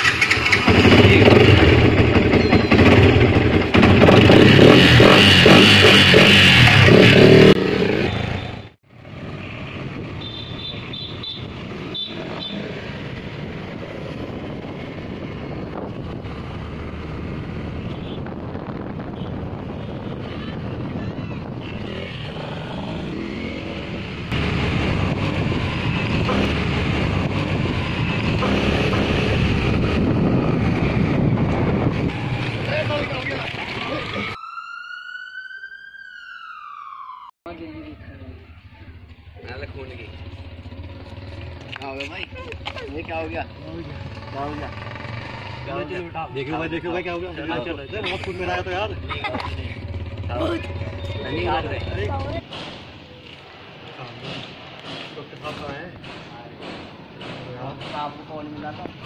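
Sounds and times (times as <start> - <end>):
motorcycle engine running: 0.0 - 8.6, 37.7 - 45.7, 48.9 - 52.4.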